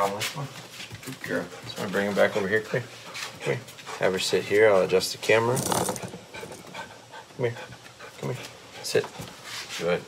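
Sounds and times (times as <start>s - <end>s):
dog panting softly: 1.0s - 4.4s, 6.1s - 9.7s.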